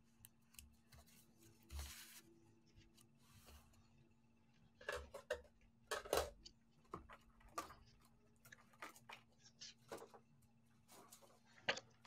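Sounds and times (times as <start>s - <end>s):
paper rustling: 0.8s - 2.4s.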